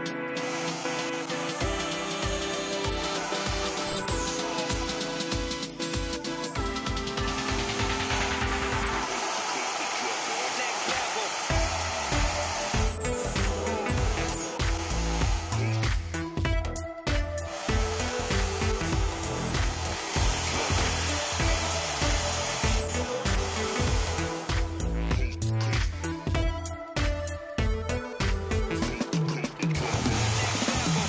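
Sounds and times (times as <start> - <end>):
background music with beat: 0.0 - 31.0
drill press boring through steel: 0.4 - 5.7, 6.7 - 16.2, 17.4 - 25.0, 29.8 - 31.0.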